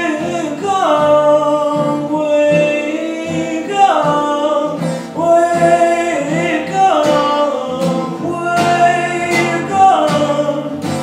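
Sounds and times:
man singing: 0.0s - 11.0s
strummed acoustic guitar: 0.0s - 11.0s.

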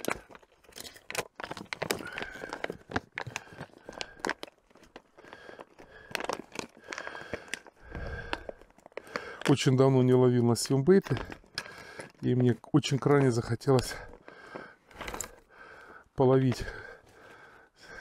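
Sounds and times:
plastic bag crinkling: 0.0s - 18.0s.

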